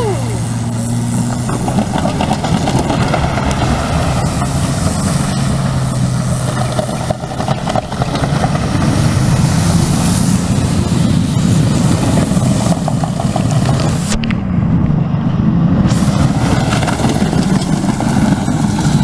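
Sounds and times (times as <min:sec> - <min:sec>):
car engine running loudly: 0:00.0 - 0:19.0.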